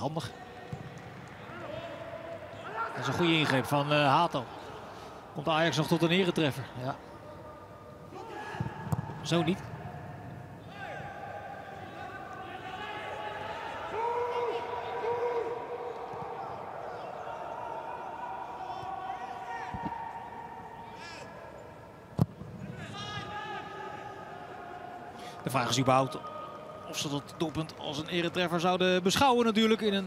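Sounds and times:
players calling and shouting: 0.0s - 28.6s.

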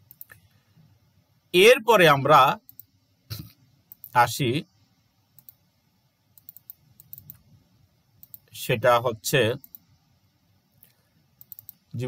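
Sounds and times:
computer mouse clicks: 0.0s - 0.5s, 2.6s - 2.9s, 5.4s - 5.6s, 6.4s - 7.4s, 8.2s - 8.5s, 9.6s - 9.9s, 10.8s - 11.9s
person speaking: 1.6s - 2.7s, 3.3s - 4.7s, 8.3s - 9.7s.

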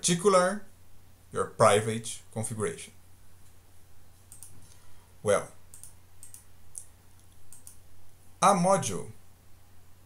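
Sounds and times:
low steady hum: 0.0s - 10.0s
computer mouse clicks: 4.3s - 4.8s, 5.7s - 7.8s.

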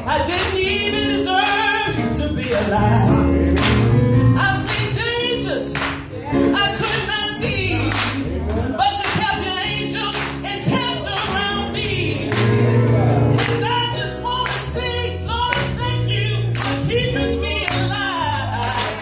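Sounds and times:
gospel choir singing: 0.0s - 19.0s
lead vocalist singing: 0.0s - 19.0s.

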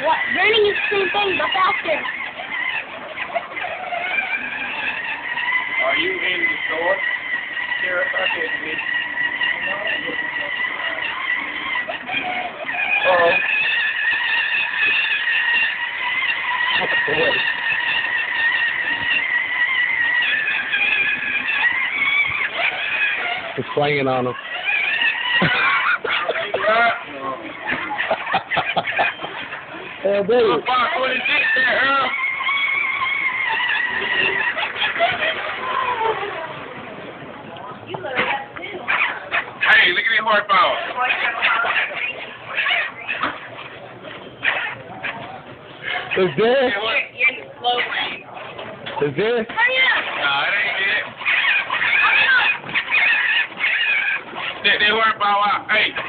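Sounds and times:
electric motor whining: 0.0s - 36.5s
people talking and calling out: 0.0s - 56.0s.

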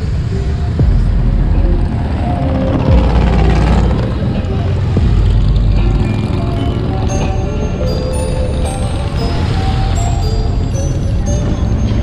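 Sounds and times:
background music: 0.0s - 12.0s
motorcycles engine rumble: 0.0s - 12.0s.

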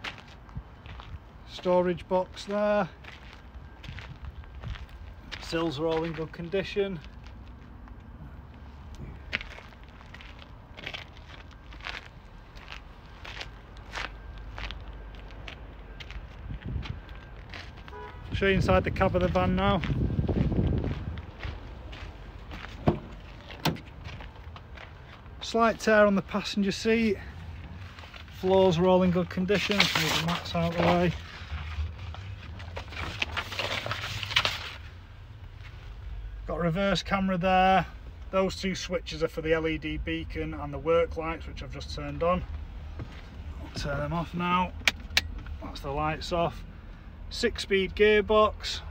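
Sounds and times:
footsteps on gravel: 0.0s - 1.2s, 2.3s - 35.8s, 42.2s - 44.3s
steady low rumble: 3.0s - 48.9s
rustling and clicks: 29.5s - 34.9s.

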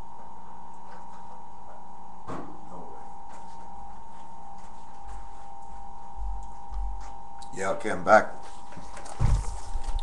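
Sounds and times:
high-pitched hum: 0.0s - 10.0s
low hum: 0.0s - 10.0s
low rumbling thuds: 9.2s - 9.8s.

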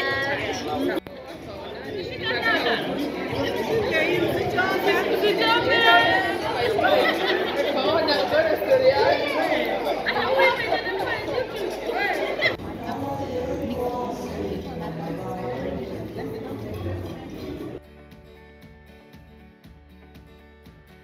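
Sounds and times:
crowd chatter echoing in hall: 0.0s - 17.8s.

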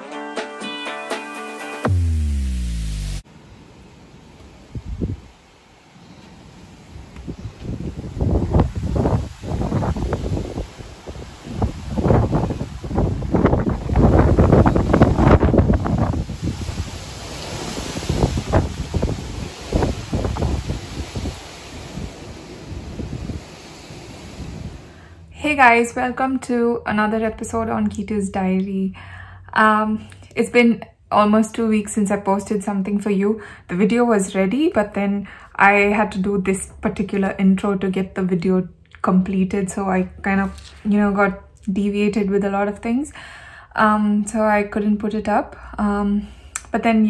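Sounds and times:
gusty wind buffeting microphone: 4.3s - 28.6s.

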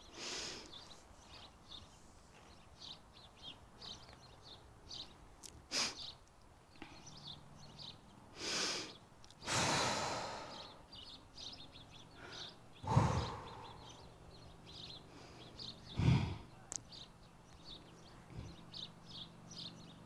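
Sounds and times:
breathy blows of air: 8.4s - 10.8s, 12.2s - 14.1s, 15.9s - 16.5s.

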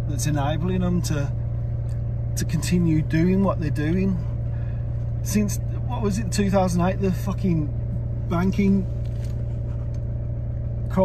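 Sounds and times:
car engine droning inside cabin: 0.0s - 11.0s.

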